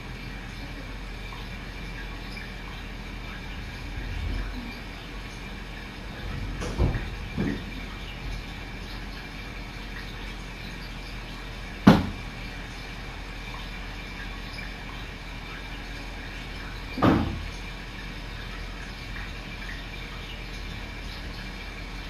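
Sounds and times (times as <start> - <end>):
sharp knock: 11.9 - 12.2.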